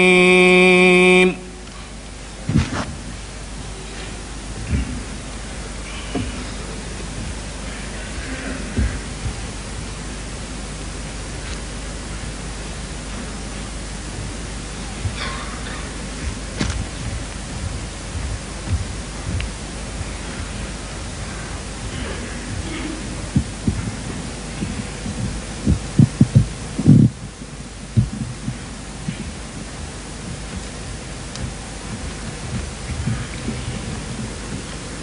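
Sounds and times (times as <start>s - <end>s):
recording hiss and hum: 0.0s - 35.0s.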